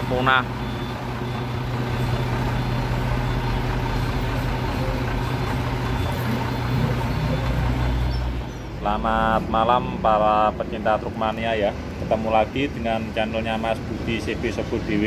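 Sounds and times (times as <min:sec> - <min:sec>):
diesel truck engine idling: 0:00.0 - 0:15.0.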